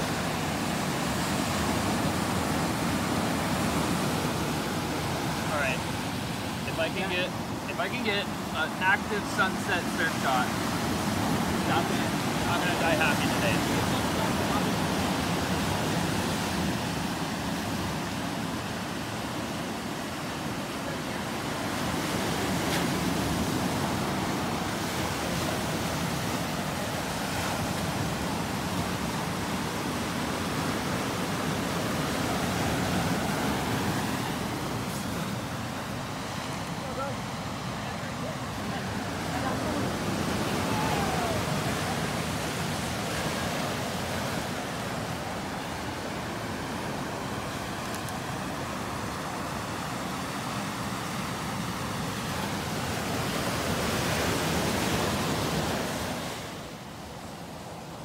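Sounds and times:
ocean surf breaking on beach: 0.0s - 58.0s.

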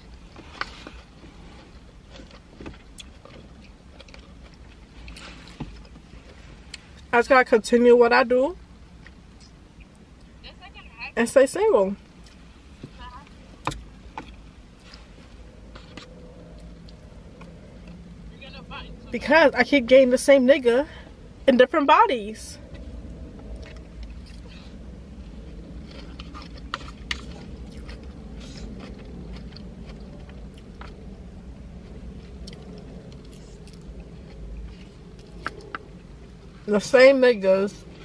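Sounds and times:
low steady rumble: 0.0s - 38.0s
chewing: 0.1s - 7.0s, 14.2s - 18.1s, 22.6s - 36.4s.

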